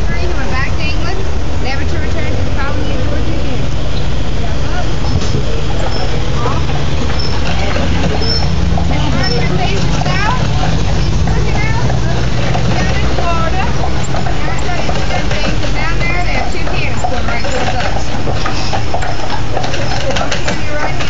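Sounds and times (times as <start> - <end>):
indistinct voices: 0.0 - 21.0
vehicle traffic rumble: 0.0 - 21.0.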